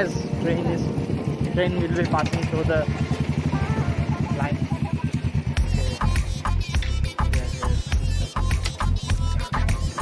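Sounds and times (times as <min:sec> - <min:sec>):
motorcycle engine idling: 0:00.0 - 0:09.6
music with heavy bass beat: 0:04.6 - 0:10.0.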